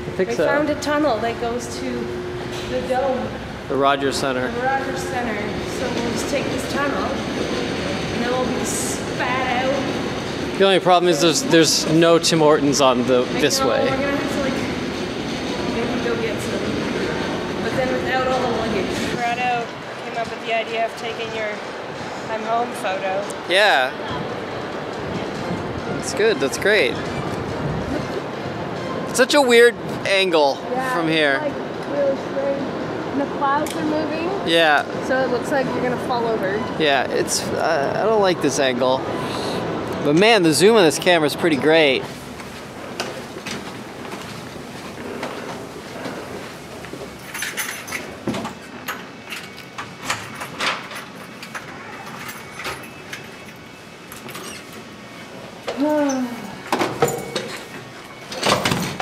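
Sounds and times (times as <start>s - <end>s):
city background rumble: 0.0s - 59.0s
footsteps: 42.0s - 50.3s.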